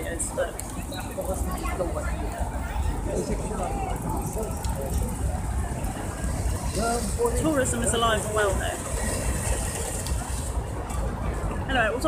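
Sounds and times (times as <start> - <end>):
passers-by talking: 0.0 - 12.0
traffic rumble: 0.0 - 12.0.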